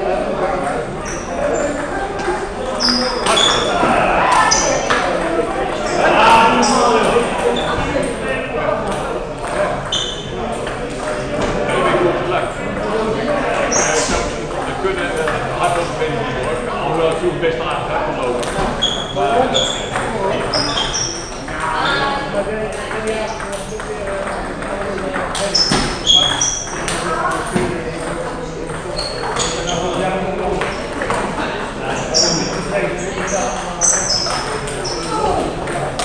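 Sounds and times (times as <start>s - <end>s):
background chatter: 0.0s - 36.0s.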